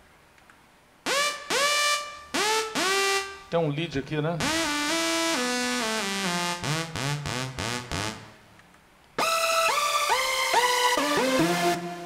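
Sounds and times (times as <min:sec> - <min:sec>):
synthesizer lead melody: 0:01.1 - 0:03.5, 0:04.4 - 0:08.4, 0:09.2 - 0:12.0.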